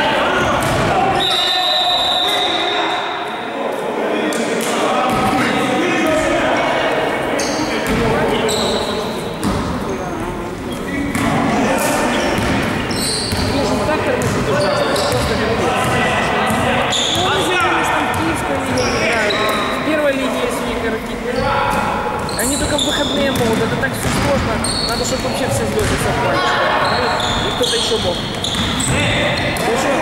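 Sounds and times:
players' voices echoing: 0.0s - 30.0s
basketball bouncing on gym floor: 0.5s - 0.9s, 13.3s - 16.6s, 22.7s - 26.2s, 28.2s - 29.7s.

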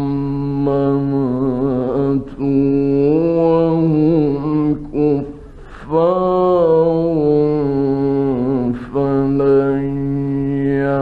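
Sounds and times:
man chanting recitation: 0.0s - 11.0s.

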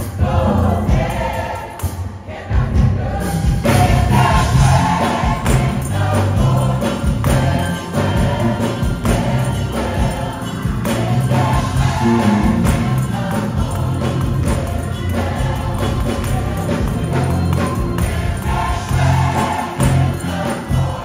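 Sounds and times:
band bass line and beat: 0.0s - 21.0s
gospel choir singing: 0.0s - 21.0s.

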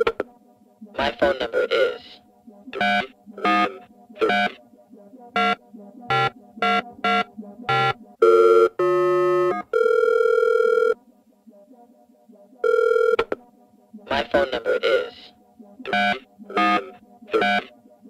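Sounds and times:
steady phone signal tones: 0.0s - 0.2s, 2.8s - 4.6s, 5.4s - 11.0s, 12.6s - 13.4s, 15.9s - 17.7s
short electronic beeps: 15.9s - 17.7s.

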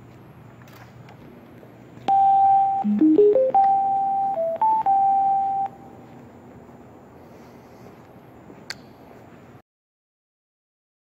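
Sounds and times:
speaker electronic status chime: 2.1s - 5.9s.

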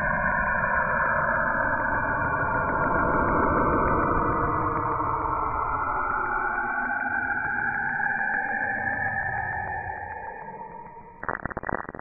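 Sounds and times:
electronic crackling and popping: 11.2s - 12.0s
pulsing electronic tones: 11.2s - 12.0s.

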